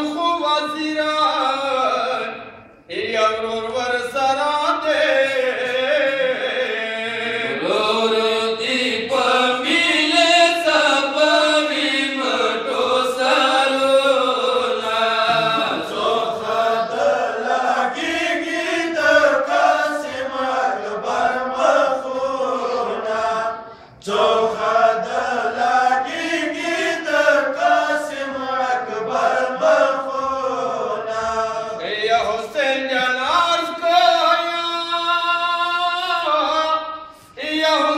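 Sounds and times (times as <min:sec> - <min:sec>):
men chanting into microphones: 0:00.0 - 0:37.9.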